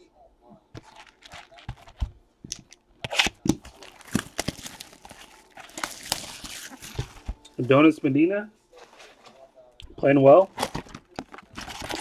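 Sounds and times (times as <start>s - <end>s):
plastic wrapping crinkling: 0.8s - 7.8s, 10.4s - 12.0s.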